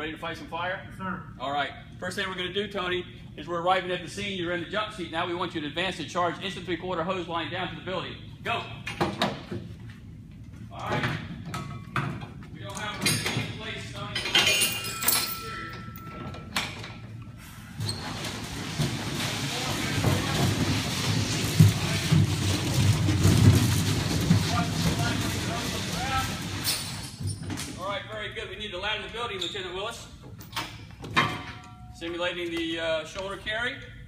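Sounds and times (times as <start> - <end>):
hose scraping across concrete: 17.4 - 27.2
knocks and clatter: 17.9 - 27.8.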